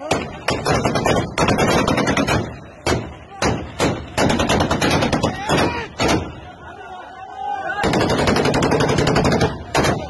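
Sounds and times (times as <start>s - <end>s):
automatic gunfire: 0.5s - 6.2s, 7.8s - 10.0s.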